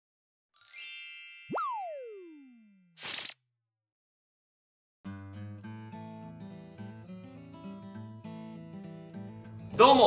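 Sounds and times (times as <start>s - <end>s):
cartoon boing swoop: 1.5s - 3.3s.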